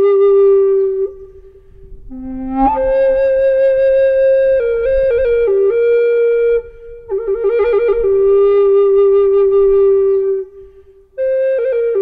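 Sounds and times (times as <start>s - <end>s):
flute long held note: 0.0s - 12.0s.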